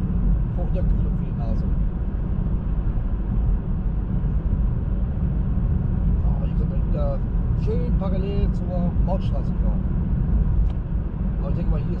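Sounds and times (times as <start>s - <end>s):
road and tyre noise in car: 0.0s - 12.0s.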